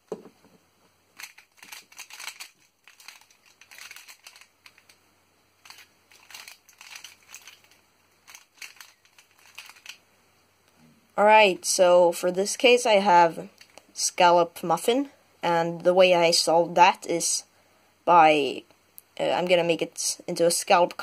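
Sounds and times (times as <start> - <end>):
plastic puzzle clicking and rattling: 1.2 - 5.0, 5.6 - 10.0.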